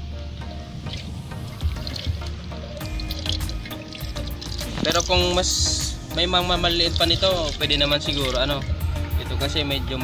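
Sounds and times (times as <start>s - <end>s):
background music: 0.0s - 10.0s
water pouring into tin can: 0.4s - 10.0s.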